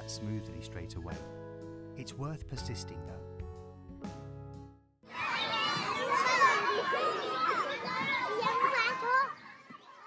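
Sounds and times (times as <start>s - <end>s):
children chattering and calling out: 5.0s - 10.0s.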